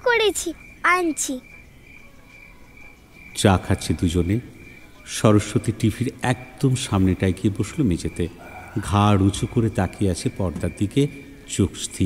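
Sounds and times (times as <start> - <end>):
crickets chirping: 0.0 - 12.0
man narrating: 3.4 - 12.0.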